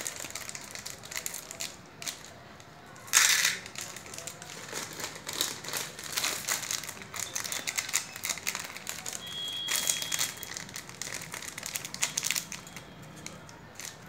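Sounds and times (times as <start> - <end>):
plastic wrappers crinkling: 0.0 - 14.0.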